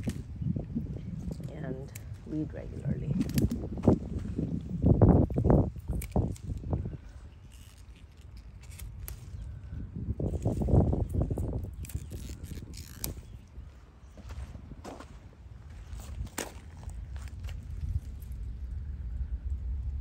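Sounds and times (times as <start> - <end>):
plants rustling and snapping: 0.0 - 2.3, 3.0 - 14.2, 15.7 - 18.4
low rumbling on microphone: 0.0 - 20.0.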